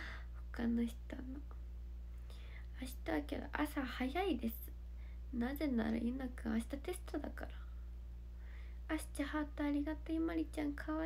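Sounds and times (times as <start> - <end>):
faint breath: 0.0 - 0.4, 2.1 - 2.7, 4.9 - 5.3, 8.3 - 8.9
woman speaking softly: 0.5 - 1.6, 2.7 - 4.7, 5.3 - 7.7, 8.9 - 11.0.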